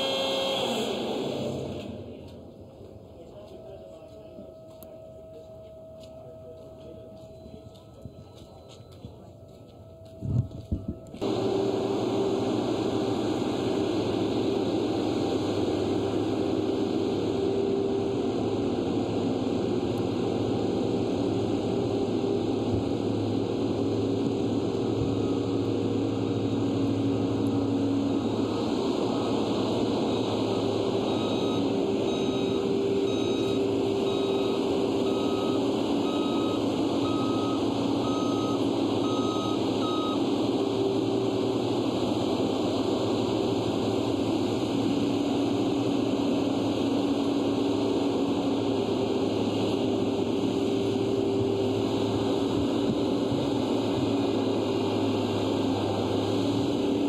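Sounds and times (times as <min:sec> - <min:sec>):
road roller diesel engine drone: 0:00.0 - 0:57.0
reversing alarm beeping: 0:02.7 - 0:12.4, 0:24.9 - 0:27.0, 0:29.0 - 0:40.9.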